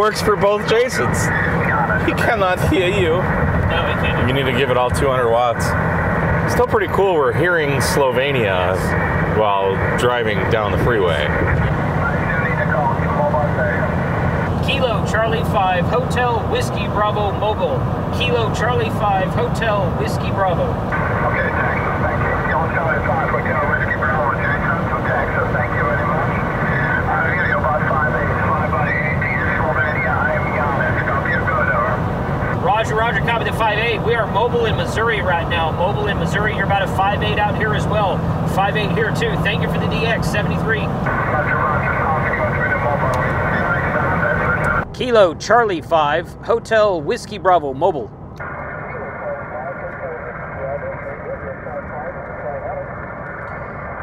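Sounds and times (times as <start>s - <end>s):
man speaking: 0.0s - 5.8s, 6.4s - 13.9s, 14.6s - 48.1s
road and engine rumble: 0.0s - 54.0s
voice over radio speaker: 0.0s - 54.0s.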